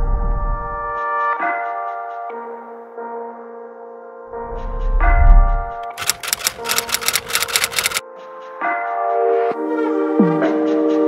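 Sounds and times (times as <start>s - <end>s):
typewriter key clicks: 5.9s - 8.0s
background music: 6.8s - 11.0s.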